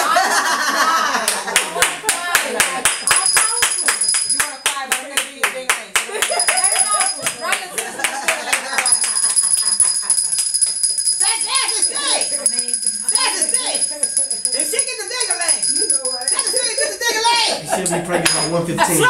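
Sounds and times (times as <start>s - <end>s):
hands clapping rhythmically: 1.2s - 10.9s
women's voices: 1.9s - 8.6s, 11.2s - 17.6s.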